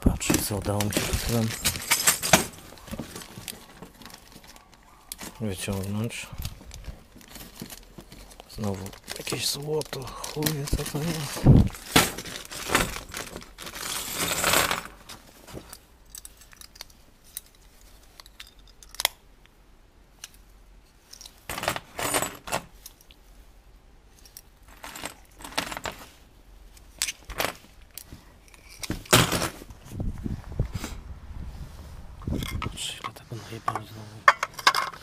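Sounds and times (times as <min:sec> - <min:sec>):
small metal rings clinking: 0:00.9 - 0:02.7.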